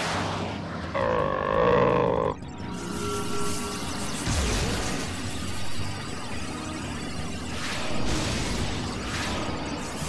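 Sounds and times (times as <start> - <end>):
background music: 0.0 - 10.0
cartoon character groaning: 1.0 - 2.4.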